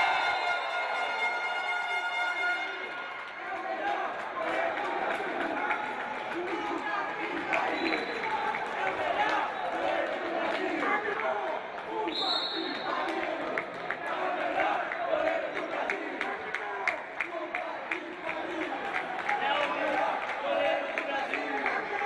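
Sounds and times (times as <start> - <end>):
players and crowd shouting: 0.0 - 22.0
referee's whistle: 7.7 - 8.3, 12.1 - 13.1.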